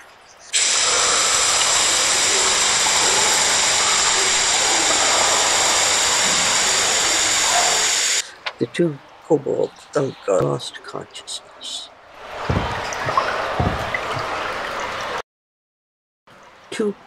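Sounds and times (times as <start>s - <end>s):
gas spraying hiss: 0.6s - 8.3s.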